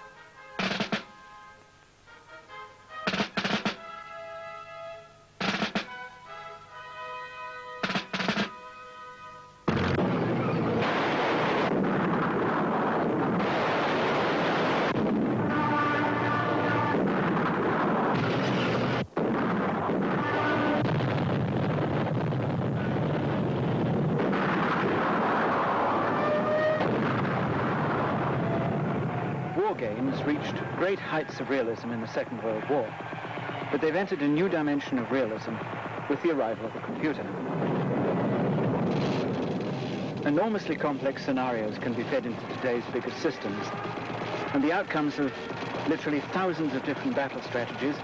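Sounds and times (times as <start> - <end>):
artillery gunfire and explosions: 0.6 - 1.1, 3.1 - 3.9, 5.4 - 5.9, 7.8 - 8.5, 9.7 - 48.0
steady engine noise: 41.8 - 48.0.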